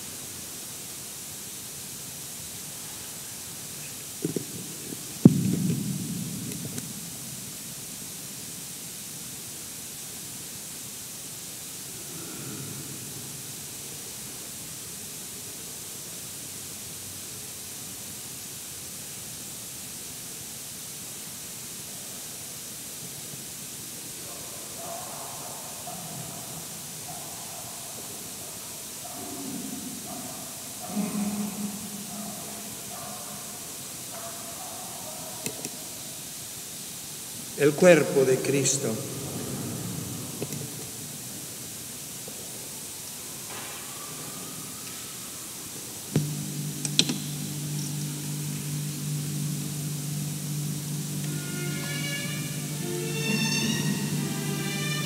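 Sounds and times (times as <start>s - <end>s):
background hiss: 0.0s - 55.0s
low murmur: 29.2s - 34.2s, 44.3s - 55.0s.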